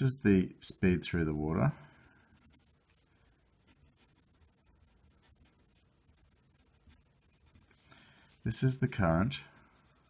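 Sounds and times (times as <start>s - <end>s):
pencil scratching on paper: 1.0s - 10.0s.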